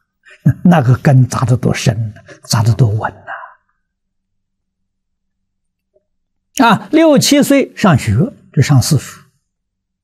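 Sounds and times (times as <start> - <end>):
elderly man speaking: 0.3 - 3.6, 6.6 - 9.3.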